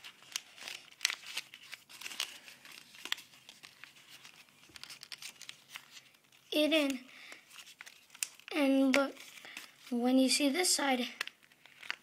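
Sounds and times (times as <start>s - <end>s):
paper crinkling and rustling: 0.0s - 10.0s, 11.2s - 12.0s.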